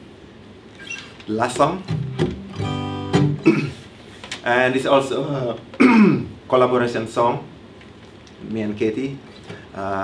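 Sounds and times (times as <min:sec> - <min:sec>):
acoustic guitar strummed: 0:01.8 - 0:03.8.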